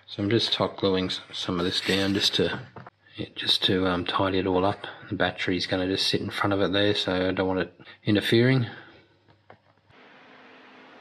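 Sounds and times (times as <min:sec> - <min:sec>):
steady low hiss: 0:00.0 - 0:09.2.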